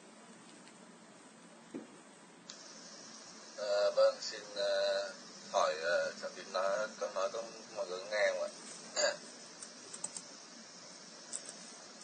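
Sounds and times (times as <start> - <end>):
faint line hiss: 0.0 - 12.0.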